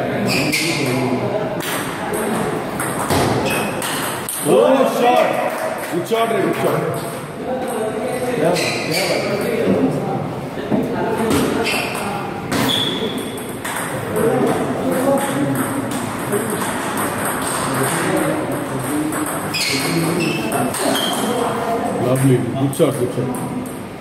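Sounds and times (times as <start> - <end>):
ball bouncing on table: 1.6 - 4.4, 11.2 - 21.4
ping pong ball clicking off paddles: 1.6 - 4.5, 11.3 - 22.4.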